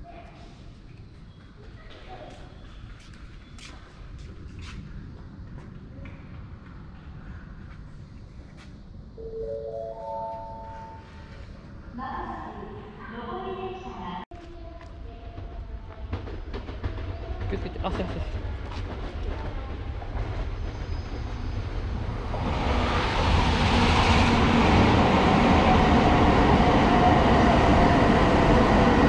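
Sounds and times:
rising four-note chime: 9.2 - 11.2.

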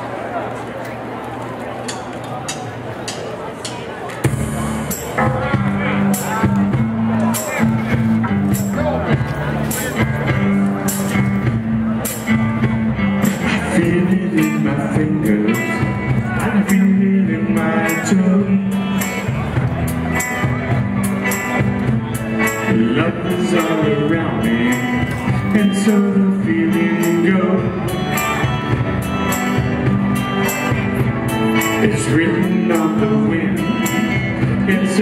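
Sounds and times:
background chatter: 0.0 - 35.0
live rock band playing: 4.2 - 35.0.

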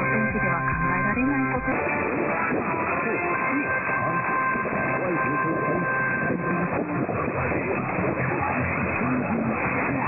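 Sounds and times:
faint voice-like radio programme: 0.0 - 10.0
radio static: 0.0 - 10.0.

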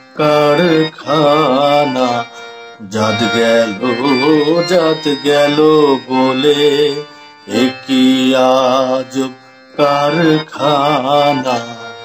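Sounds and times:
harmonium notes: 0.0 - 12.0
person singing wavering melody: 0.0 - 12.0.

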